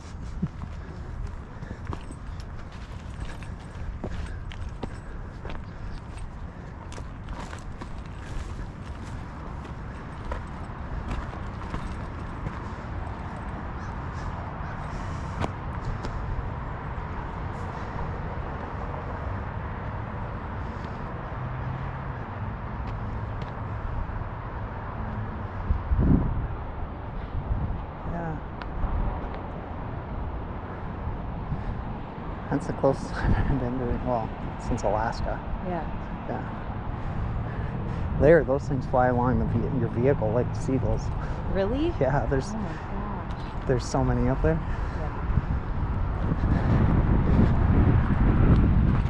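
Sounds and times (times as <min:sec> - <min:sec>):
footsteps on dirt trail: 0:00.0 - 0:24.0, 0:40.8 - 0:49.0
wind rumble on microphone: 0:00.0 - 0:49.0.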